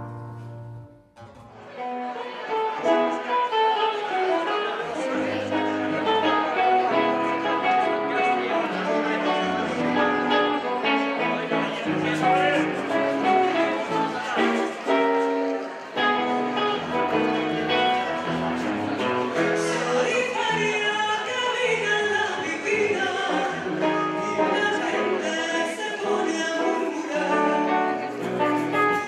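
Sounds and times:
acoustic guitars and plucked strings: 0.0s - 29.0s.

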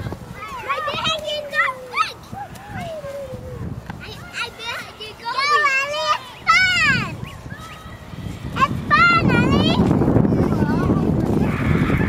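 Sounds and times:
children playing: 0.0s - 12.0s.

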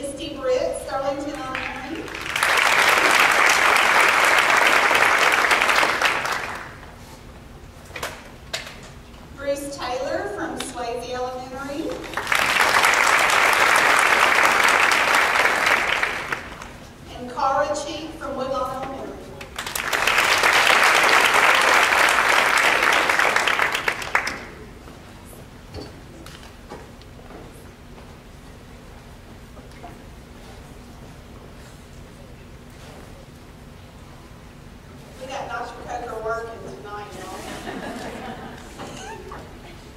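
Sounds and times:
person making announcement: 0.0s - 2.1s, 17.1s - 19.4s, 35.2s - 37.4s
audience applauding: 1.6s - 6.9s, 12.0s - 16.8s, 19.5s - 24.7s.

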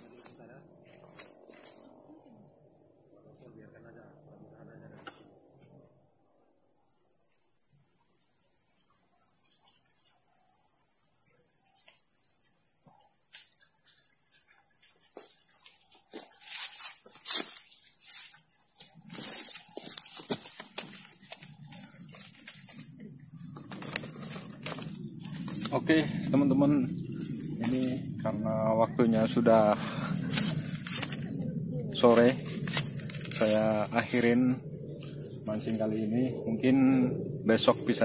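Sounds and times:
high-pitched insect drone: 0.0s - 38.0s.

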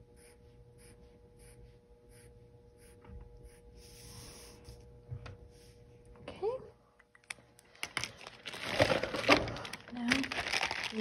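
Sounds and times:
plastic bag crinkling: 7.7s - 11.0s.

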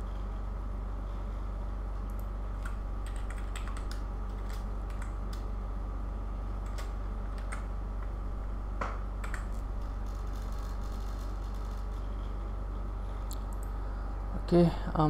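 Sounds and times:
steady low hum: 0.0s - 15.0s.

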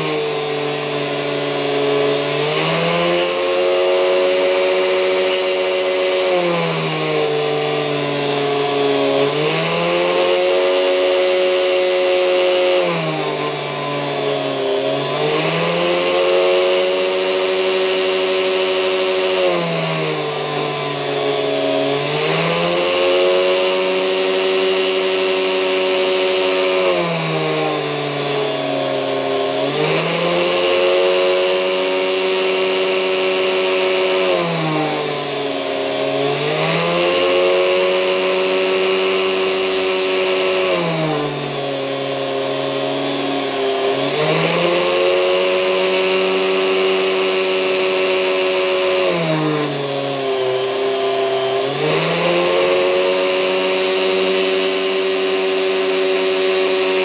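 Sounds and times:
rotary tool drilling brass: 0.0s - 57.0s.

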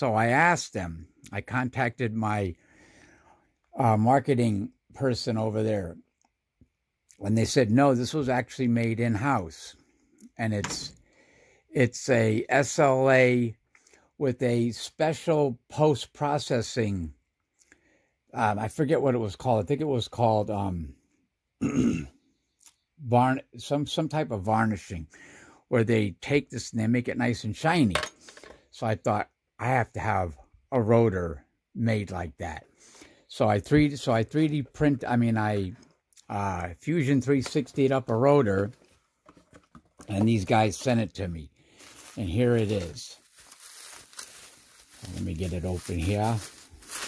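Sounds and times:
man clearing his throat: 21.6s - 22.2s
bubble wrap crackles: 41.7s - 47.0s
bubble wrap rustling: 41.7s - 47.0s.

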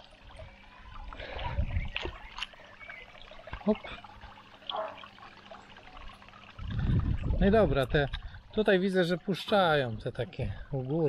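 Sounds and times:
hand sloshing pond water: 0.0s - 11.0s.

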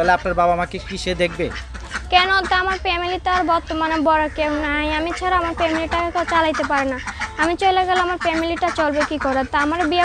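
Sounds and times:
woman talking: 2.1s - 10.0s.

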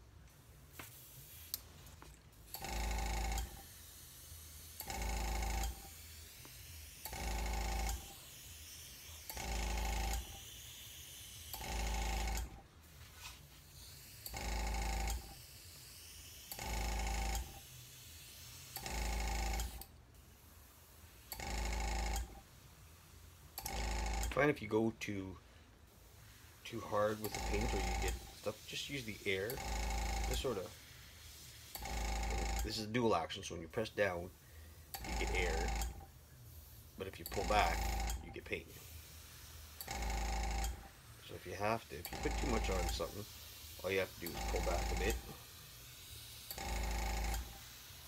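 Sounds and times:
air compressor motor humming: 0.0s - 48.0s
airbrush hissing: 0.7s - 21.5s, 25.8s - 35.8s, 36.5s - 48.0s.

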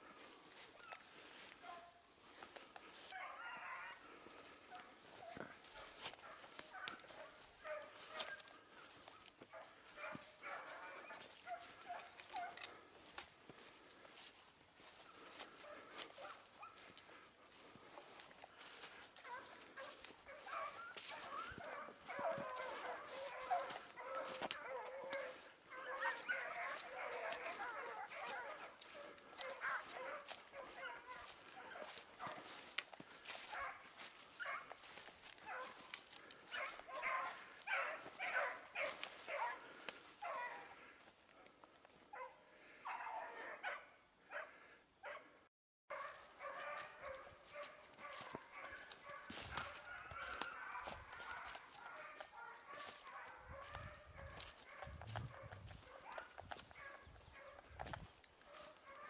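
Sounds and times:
pack of dogs barking: 0.0s - 59.0s.

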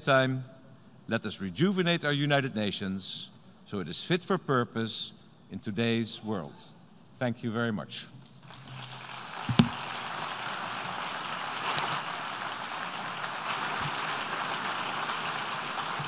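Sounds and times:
people applauding: 8.4s - 16.0s.

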